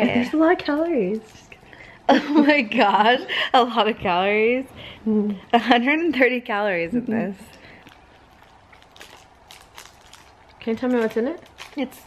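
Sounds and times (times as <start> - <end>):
candy crackling when bitten: 7.3 - 12.0.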